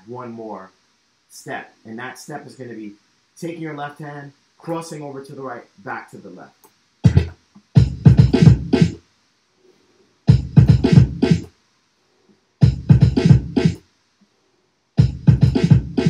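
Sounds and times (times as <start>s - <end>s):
drum break from turntables: 6.7s - 9.0s, 10.3s - 11.6s, 12.6s - 13.9s, 15.0s - 16.0s.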